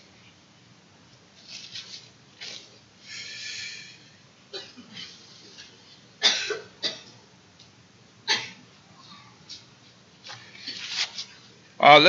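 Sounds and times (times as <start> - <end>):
person coughing: 4.5 - 5.2, 6.2 - 7.1, 8.3 - 8.6.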